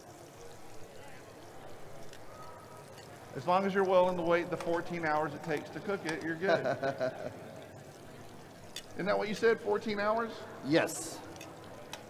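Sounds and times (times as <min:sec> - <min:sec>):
faint voices: 0:00.0 - 0:12.0
food sizzling in a pan: 0:00.0 - 0:12.0.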